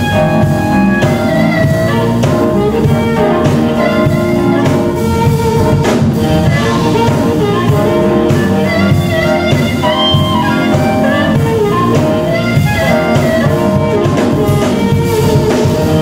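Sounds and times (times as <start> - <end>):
drum kit beat: 0.0 - 16.0
electric guitar: 0.0 - 16.0
harmonica lead: 0.0 - 16.0
keyboard: 0.0 - 16.0.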